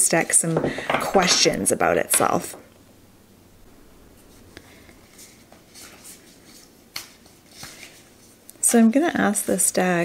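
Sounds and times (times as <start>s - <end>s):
cards sliding and rustling: 5.2s - 8.4s.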